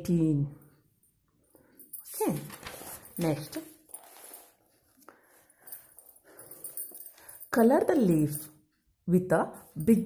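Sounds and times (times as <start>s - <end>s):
pen rustling on paper: 2.4s - 5.4s.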